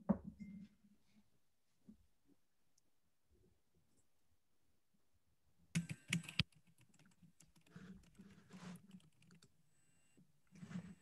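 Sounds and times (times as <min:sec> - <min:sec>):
keyboard typing: 0:05.8 - 0:09.6.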